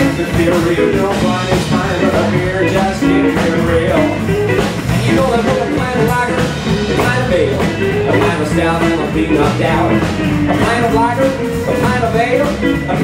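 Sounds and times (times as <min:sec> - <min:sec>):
drums: 0:00.0 - 0:13.0
electric guitar: 0:00.0 - 0:13.0.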